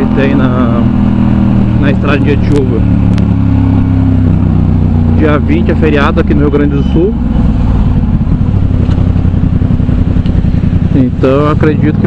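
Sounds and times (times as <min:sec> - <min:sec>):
motorcycle engine pulsing exhaust: 0:00.0 - 0:12.0.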